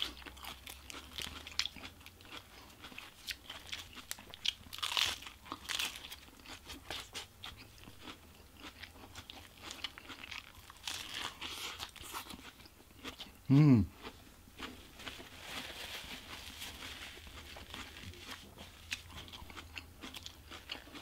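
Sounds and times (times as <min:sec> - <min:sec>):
crunchy chewing: 0:00.0 - 0:13.4, 0:16.0 - 0:21.0.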